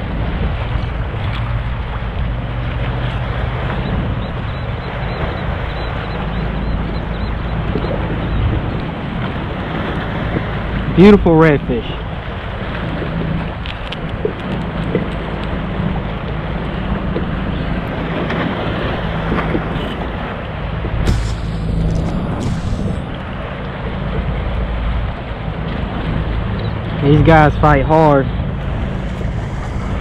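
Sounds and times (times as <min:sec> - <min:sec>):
steady low hum: 0:00.0 - 0:30.0
wind buffeting microphone: 0:00.0 - 0:30.0.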